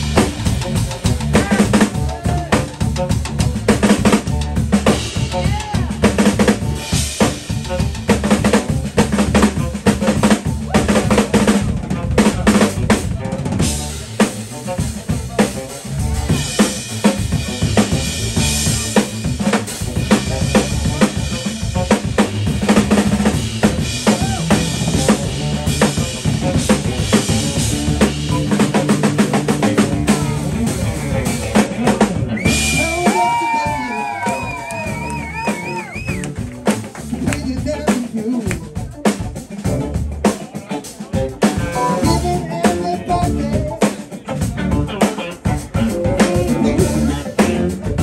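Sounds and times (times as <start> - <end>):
bass guitar: 0.0 - 48.0
drum kit played hard: 0.0 - 48.0
electric guitar: 0.0 - 48.0.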